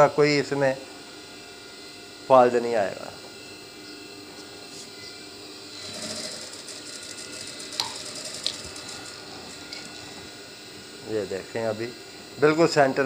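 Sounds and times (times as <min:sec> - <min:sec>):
sewing machine motor hum: 0:05.0 - 0:12.4
sewing machine stitching: 0:05.8 - 0:09.9.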